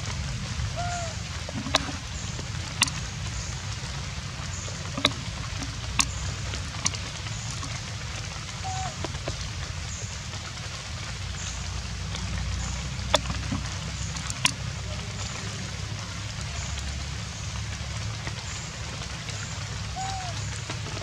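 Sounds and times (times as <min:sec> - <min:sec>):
steady rain falling: 0:00.0 - 0:21.0.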